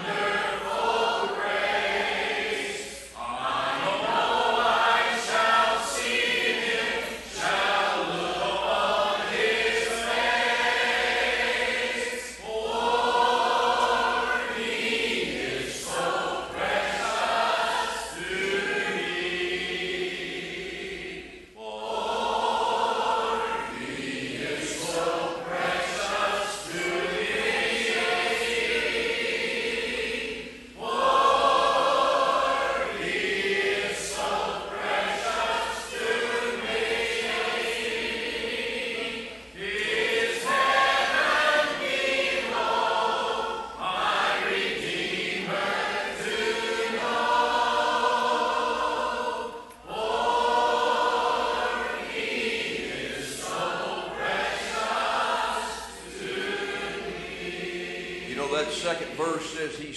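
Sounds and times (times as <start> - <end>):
group singing a hymn: 0.0 - 59.9.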